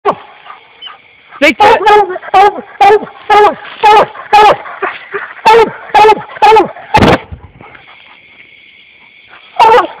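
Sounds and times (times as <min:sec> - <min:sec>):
hound barking: 0:00.0 - 0:08.4, 0:09.0 - 0:10.0
steady high-pitched hiss: 0:00.0 - 0:10.0.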